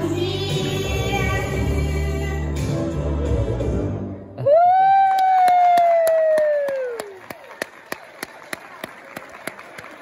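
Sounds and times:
girl singing into microphone: 0.0s - 2.6s
clapping: 5.0s - 10.0s.

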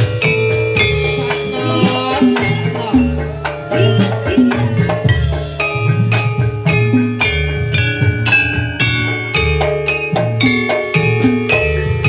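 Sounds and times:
low drum beats: 0.0s - 12.0s
metallophone notes ringing: 0.0s - 12.0s.

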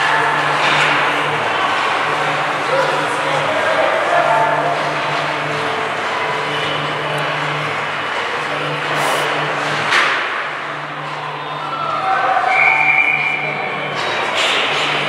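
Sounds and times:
skates scraping ice: 8.9s - 9.3s
spectators' voices: 8.9s - 9.3s.

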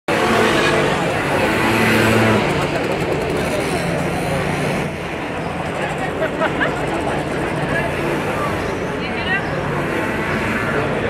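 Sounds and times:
people talking: 0.1s - 9.8s.

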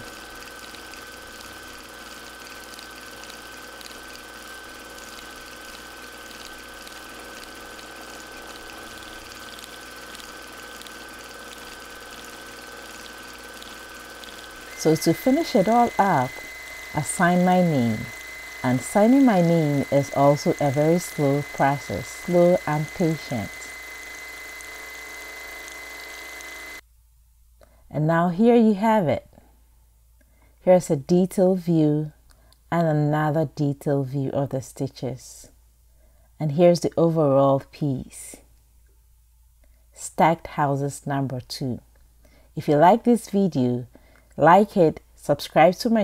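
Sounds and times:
sewing machine running: 0.0s - 26.8s.

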